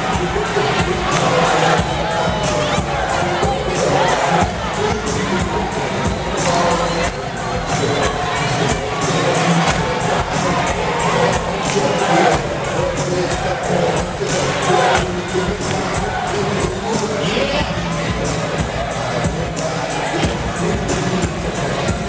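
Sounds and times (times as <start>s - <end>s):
crowd cheering and shouting: 0.0s - 22.0s
music with steady beat: 0.0s - 22.0s.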